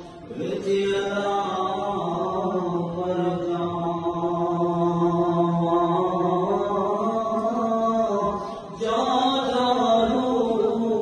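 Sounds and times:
men chanting: 0.3s - 11.0s.

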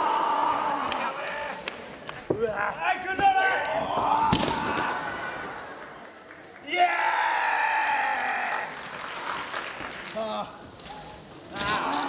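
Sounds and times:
crowd noise: 0.0s - 7.2s
applause: 5.7s - 6.8s, 8.4s - 10.3s.

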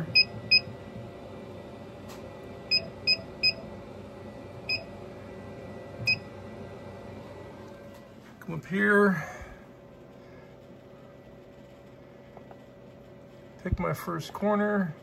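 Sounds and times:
steady machine hum: 0.0s - 15.0s.

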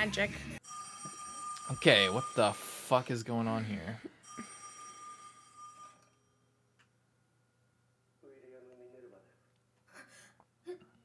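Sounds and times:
high steady ringing tone: 0.6s - 8.2s.

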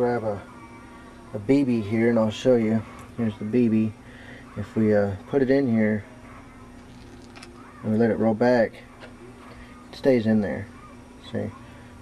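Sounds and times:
man speaking: 0.0s - 0.4s, 1.3s - 4.0s, 4.6s - 6.1s, 7.8s - 8.8s
low electrical hum: 0.0s - 12.0s.

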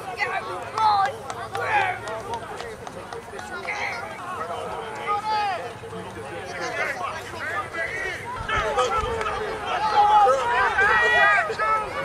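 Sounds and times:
spectators talking and calling out: 0.0s - 12.0s.

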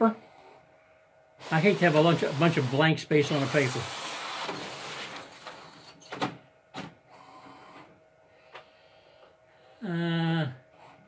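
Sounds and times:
printer running noise: 1.4s - 6.3s, 7.1s - 8.0s
faint steady whine: 4.6s - 11.0s.

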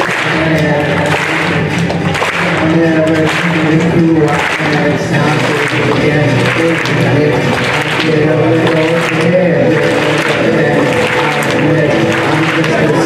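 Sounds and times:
audience applause and cheering: 0.0s - 13.0s
music playing: 0.0s - 13.0s.

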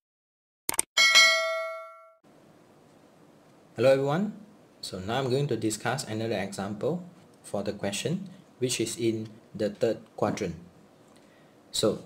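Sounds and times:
bright bell chime: 1.0s - 2.2s.

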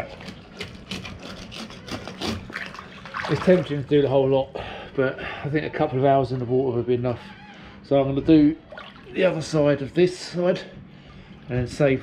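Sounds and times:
scrubbing strokes: 0.0s - 4.0s
water splashing and dripping: 2.5s - 3.8s, 8.7s - 9.1s.

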